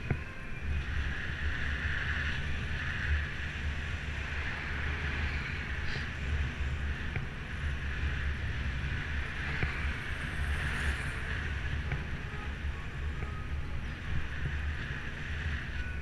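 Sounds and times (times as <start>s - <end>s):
tyre and road noise: 0.0s - 16.0s
wind rushing over microphone: 0.0s - 16.0s.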